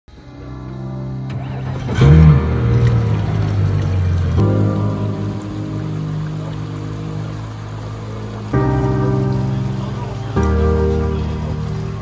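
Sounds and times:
background music with sustained chords: 0.1s - 12.0s.

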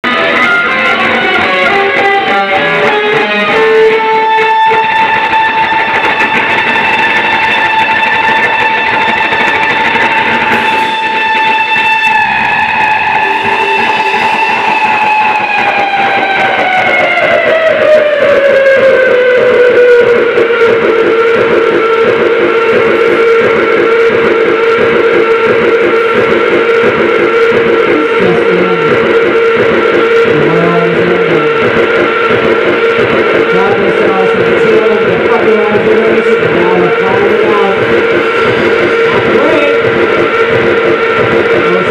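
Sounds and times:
distorted electric guitar drone: 0.0s - 41.9s.

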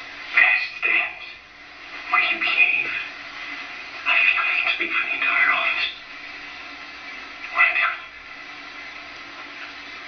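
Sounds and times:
faint hum: 0.0s - 10.0s
steady background hiss: 0.0s - 10.0s.

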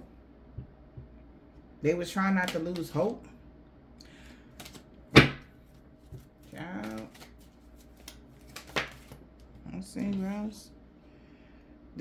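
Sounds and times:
cards being shuffled: 4.5s - 4.9s, 5.6s - 10.2s.

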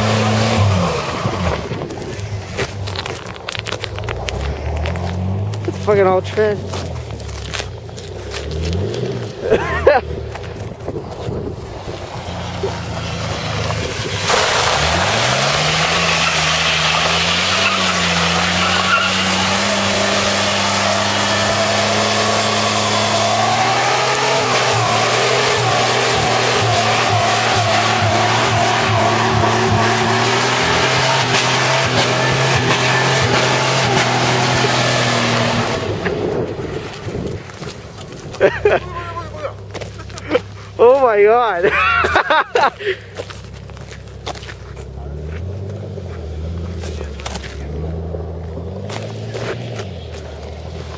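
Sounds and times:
tire squeal: 0.0s - 2.2s, 11.7s - 38.1s
pickup engine revving: 0.0s - 50.9s.

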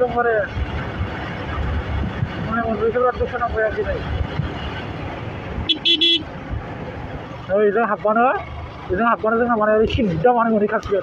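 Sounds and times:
motorbike riding: 0.0s - 11.0s
wind buffeting microphone: 0.5s - 2.9s.

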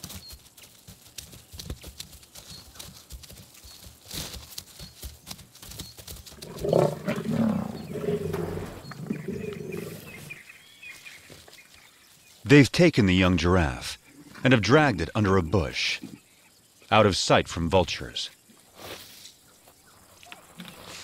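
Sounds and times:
lion growling: 6.4s - 10.4s.

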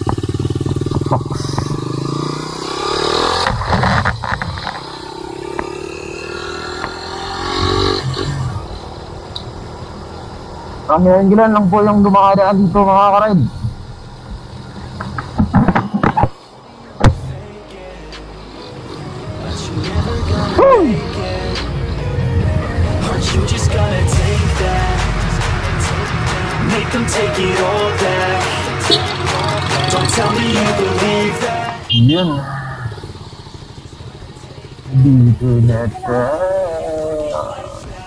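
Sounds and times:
motorcycle engine running: 0.0s - 17.3s, 18.9s - 38.0s.

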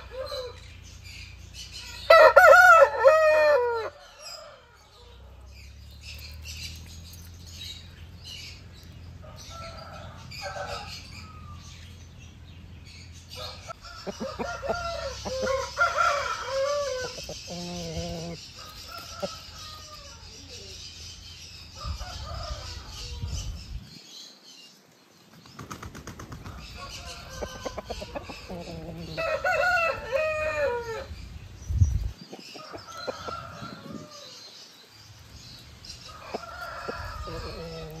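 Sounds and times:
roosters crowing and clucking: 0.0s - 24.0s, 25.6s - 38.0s.

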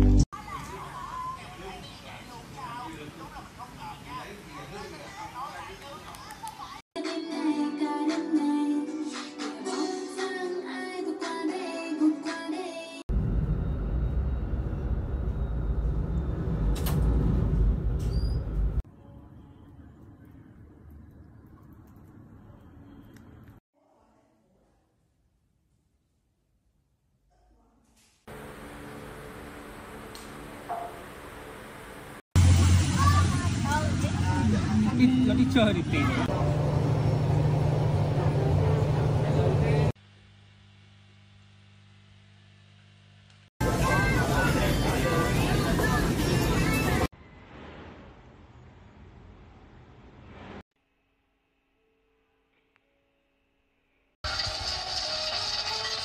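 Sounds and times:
pop singing with music: 7.0s - 13.0s
low hum: 13.1s - 23.6s, 36.1s - 43.3s
traffic rumble: 28.3s - 40.0s
boat engine low rumble: 36.3s - 39.9s.

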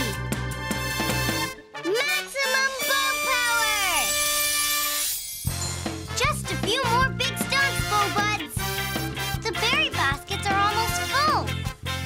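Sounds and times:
bright shimmer: 3.6s - 6.1s.

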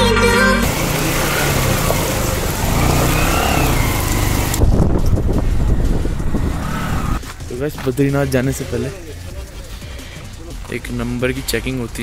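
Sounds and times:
background music: 0.0s - 12.0s
vehicle engine rumble: 0.0s - 12.0s
wind and road hiss: 0.7s - 7.4s.

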